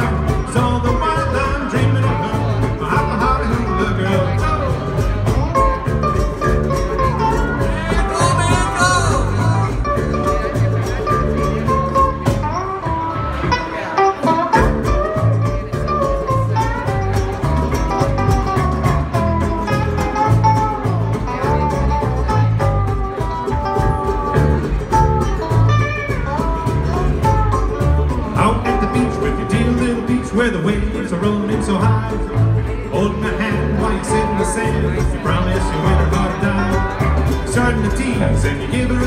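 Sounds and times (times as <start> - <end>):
drums: 0.0 - 39.0
electric bass: 0.0 - 39.0
sliding lead melody: 0.0 - 39.0
ukuleles: 0.0 - 39.0.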